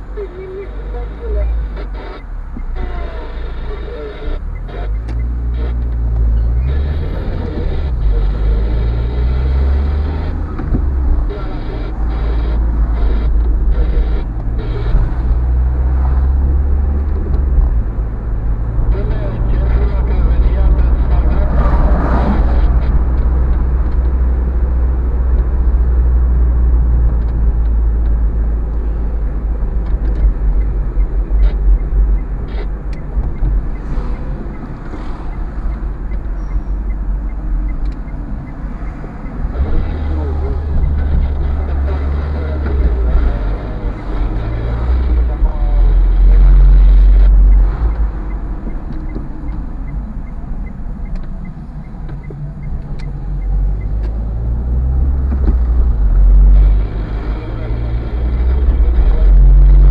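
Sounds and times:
car engine and road noise: 0.0s - 59.9s.

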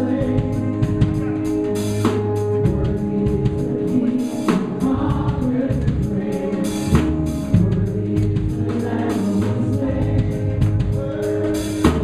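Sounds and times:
drum kit beat: 0.0s - 12.0s
electric guitars: 0.0s - 12.0s
keyboard playing: 0.0s - 12.0s
people singing: 0.0s - 12.0s.

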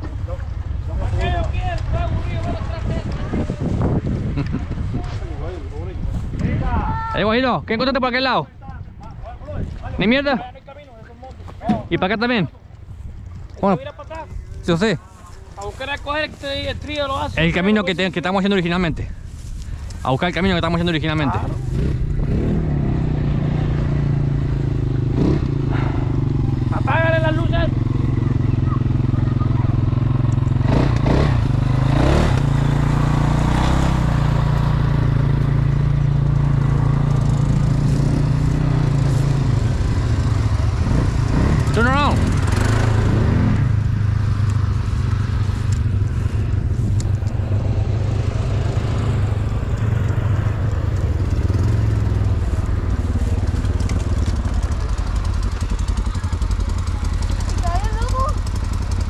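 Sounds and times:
atv engines idling: 0.0s - 59.0s.

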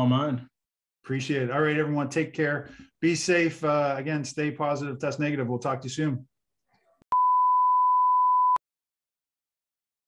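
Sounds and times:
high pure test tone beep: 7.1s - 8.6s.

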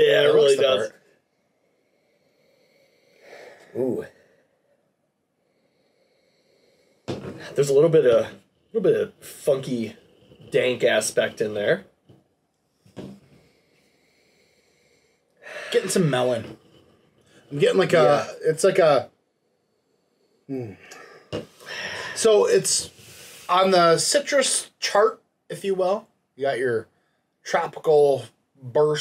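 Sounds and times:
faint sniffing: 20.5s - 23.8s
breath in through the nose: 22.9s - 23.5s.

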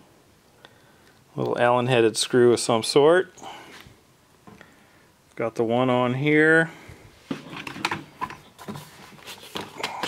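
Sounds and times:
handling knocks and rustles: 7.2s - 10.0s.

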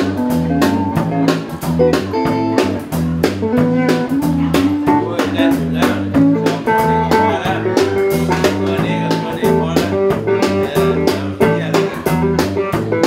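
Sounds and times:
drum beat: 0.0s - 13.0s
electric bass line: 0.0s - 13.0s
electric guitar notes: 0.0s - 13.0s.

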